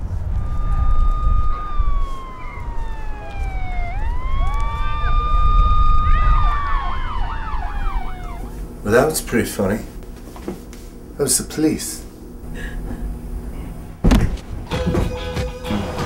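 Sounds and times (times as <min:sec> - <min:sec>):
police siren wailing: 0:00.0 - 0:08.8
steady low rumble: 0:00.0 - 0:10.3.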